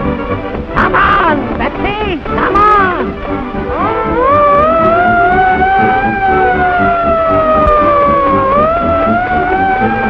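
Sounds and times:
rhythmic low pulsing: 0.0 - 10.0
fire engine siren wailing: 3.7 - 10.0.

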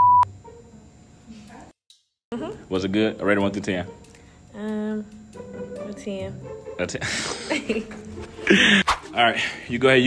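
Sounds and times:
censor bleep tone: 0.0 - 0.3.

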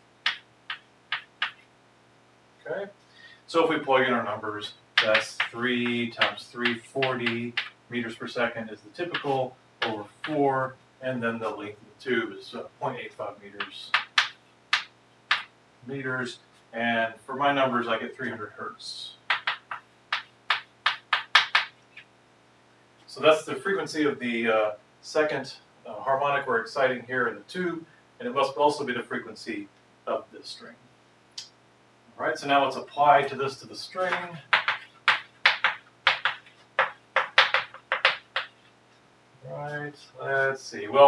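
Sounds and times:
chalk tapping on blackboard: 0.2 - 1.7, 5.0 - 7.8, 9.1 - 10.4, 13.6 - 15.5, 19.3 - 22.1, 34.0 - 38.7.

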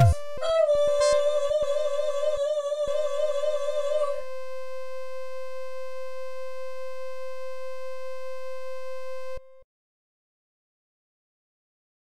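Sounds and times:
held synthesized note: 0.0 - 2.0.

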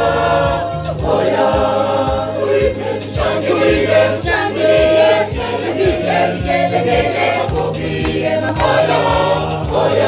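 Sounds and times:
choir singing in harmony: 0.0 - 10.0
low thudding beat: 0.0 - 10.0.

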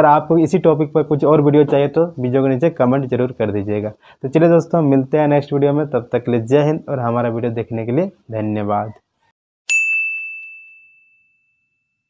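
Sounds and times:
bell-like ding: 9.7 - 12.0.

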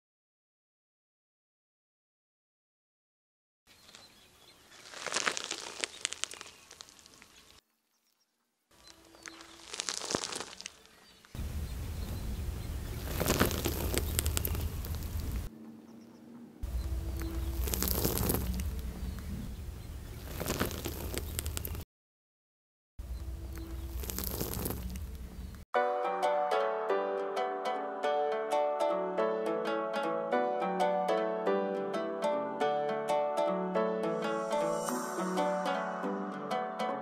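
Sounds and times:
corn husks crackling and tearing: 3.7 - 7.7, 8.7 - 15.5, 16.6 - 21.8, 23.2 - 25.6
car tyre crushing corn: 3.8 - 7.6, 8.8 - 15.5, 16.7 - 21.8, 23.6 - 25.5
low engine rumble: 11.4 - 21.8, 23.0 - 25.6.

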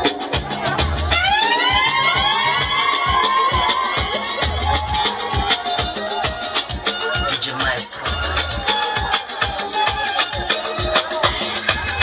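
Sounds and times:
dance music beat: 0.0 - 12.0.

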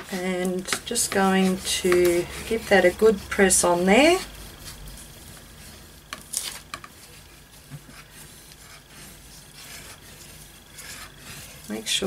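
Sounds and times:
scratchy strokes: 0.0 - 12.0
bone folder rubbing paper: 1.2 - 11.8.

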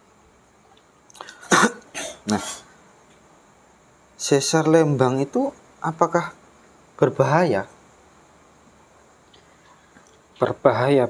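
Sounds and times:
man coughing: 1.4 - 2.7.

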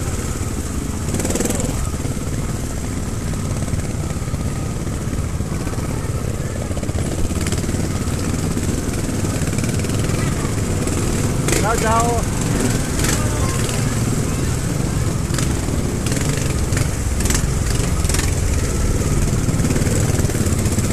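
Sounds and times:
motorcycle engines puttering: 0.0 - 20.9.

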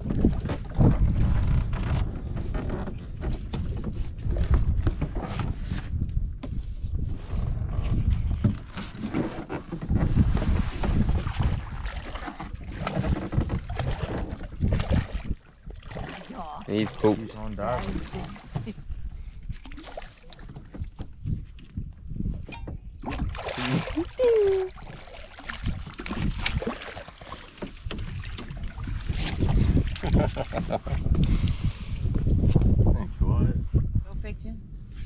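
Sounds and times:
wind buffeting microphone: 0.0 - 19.8, 20.4 - 27.0, 27.6 - 35.0
fish splashing in water: 11.2 - 17.1, 23.2 - 30.4.

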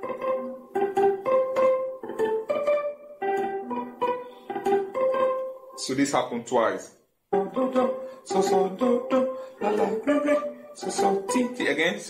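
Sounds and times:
clean electric guitar solo: 0.0 - 5.8.

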